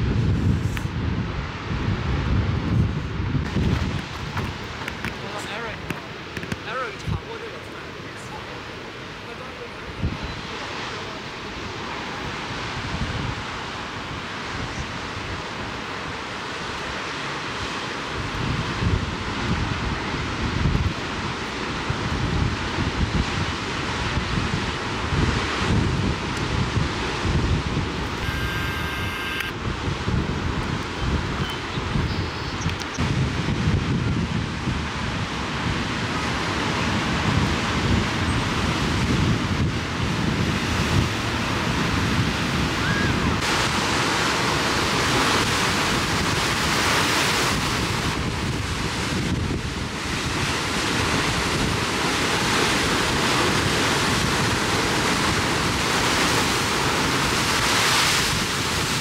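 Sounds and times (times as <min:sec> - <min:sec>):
wind buffeting microphone: 0:00.0 - 0:07.6, 0:08.6 - 0:16.2, 0:17.6 - 0:59.0
ocean surf breaking on rocks: 0:00.8 - 0:32.0, 0:33.0 - 0:59.0.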